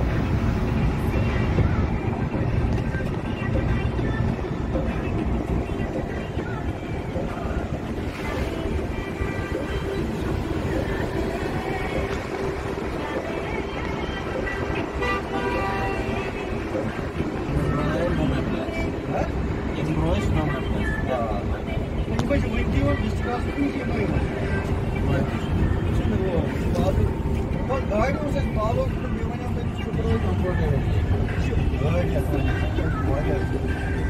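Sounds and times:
wind on microphone: 0:00.0 - 0:19.8
moving vehicle rumble: 0:00.0 - 0:34.0
people talking: 0:13.0 - 0:34.0.

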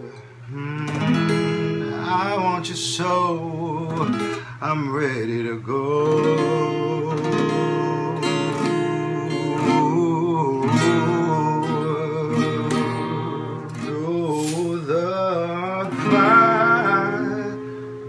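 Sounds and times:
acoustic guitar strummed and picked: 0:00.0 - 0:18.0
man singing long held notes: 0:00.0 - 0:18.0.

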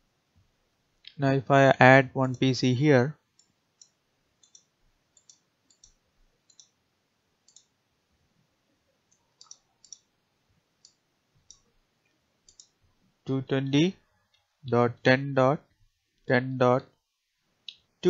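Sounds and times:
faint computer mouse clicks: 0:03.4 - 0:06.8, 0:07.5 - 0:07.7, 0:09.1 - 0:10.1, 0:12.5 - 0:12.8.

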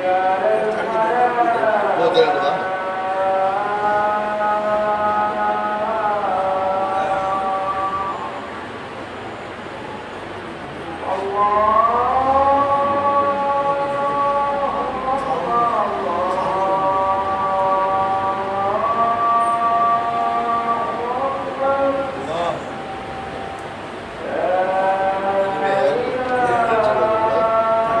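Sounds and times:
person chanting held notes: 0:00.0 - 0:09.0, 0:10.7 - 0:28.0.

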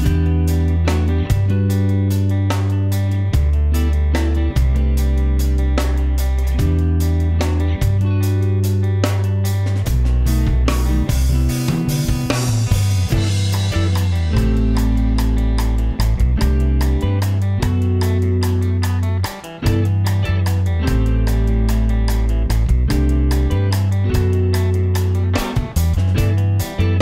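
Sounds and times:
bass guitar: 0:00.0 - 0:27.0
drums: 0:00.0 - 0:27.0
electric guitar: 0:00.0 - 0:27.0.

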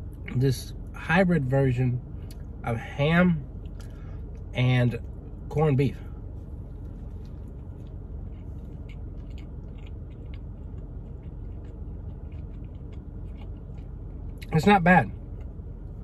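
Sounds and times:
steady low hum: 0:00.0 - 0:16.0
chewing with mouth closed: 0:06.7 - 0:16.0.

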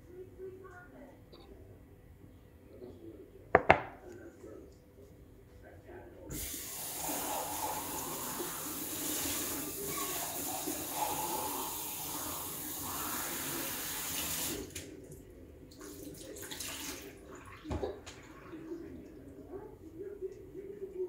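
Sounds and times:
tap water running: 0:06.3 - 0:14.9, 0:15.7 - 0:18.5.

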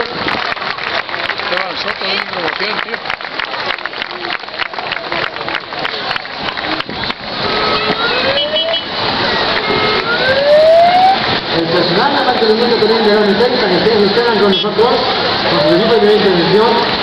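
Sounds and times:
crowd clapping: 0:00.0 - 0:13.6
fire engine siren: 0:07.3 - 0:11.6, 0:15.3 - 0:17.0.

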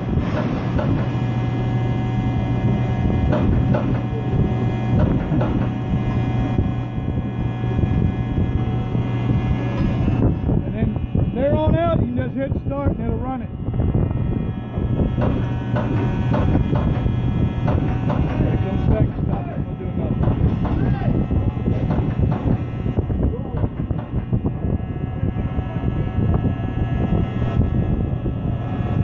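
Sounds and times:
machine knocks and clanks: 0:00.0 - 0:01.5, 0:02.8 - 0:06.3, 0:15.1 - 0:22.8, 0:23.5 - 0:24.5
machine hum: 0:00.0 - 0:29.0.

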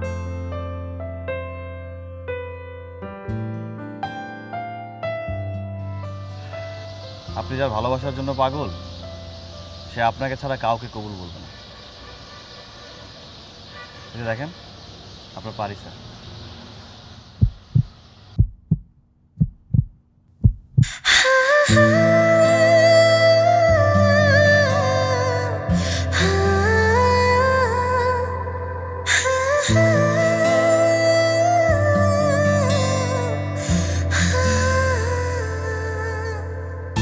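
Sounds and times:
music with sustained chords: 0:00.0 - 0:11.9, 0:21.6 - 0:37.0
heartbeat thumps: 0:17.4 - 0:21.0
slow background score: 0:20.8 - 0:37.0.

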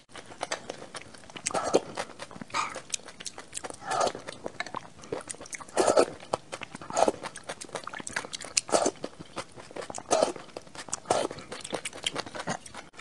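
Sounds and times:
chewing soft wet food: 0:00.1 - 0:13.0.

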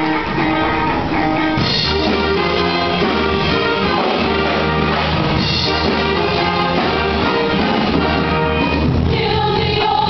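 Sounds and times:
choir singing in harmony: 0:00.0 - 0:10.0.

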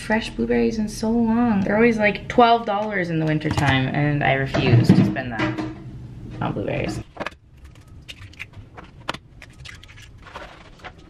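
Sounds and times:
kitchen items clicking and clinking: 0:01.7 - 0:05.8.

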